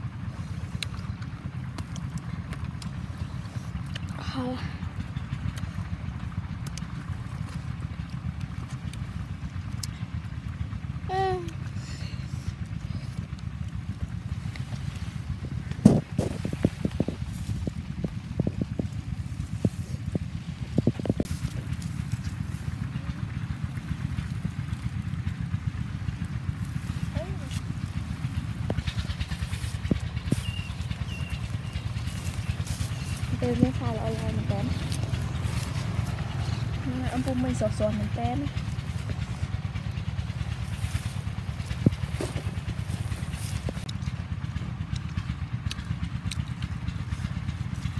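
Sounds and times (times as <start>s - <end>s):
wind rumble on microphone: 13.3s - 23.0s.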